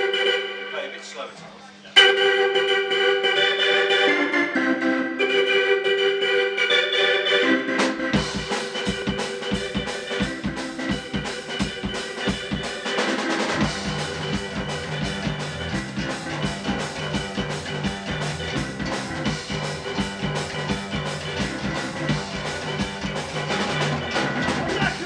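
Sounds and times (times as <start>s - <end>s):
organ keyboard chords: 0.0s - 25.0s
drum kit steady beat: 7.7s - 25.0s
low bass line: 13.6s - 25.0s.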